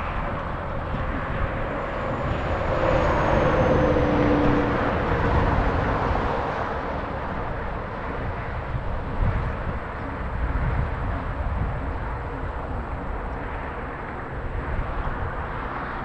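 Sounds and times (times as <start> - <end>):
wind rumble on microphone: 0.0 - 16.0
vehicle passing: 0.1 - 8.7.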